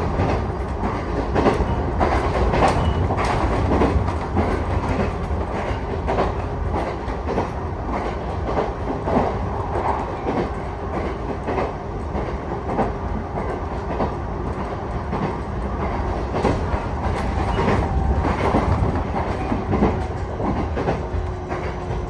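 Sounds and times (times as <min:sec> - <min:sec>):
train rumble inside carriage: 0:00.0 - 0:22.0
wheels clacking over rail joints: 0:00.0 - 0:22.0.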